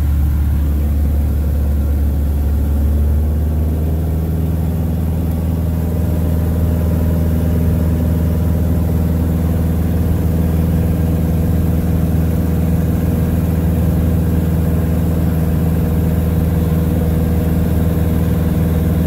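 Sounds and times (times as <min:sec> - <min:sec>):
airplane engine and propeller droning: 0:00.0 - 0:19.0.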